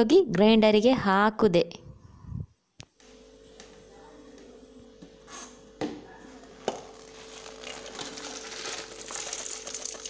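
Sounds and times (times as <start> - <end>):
dry chillies rattling into jar: 7.2 - 10.0.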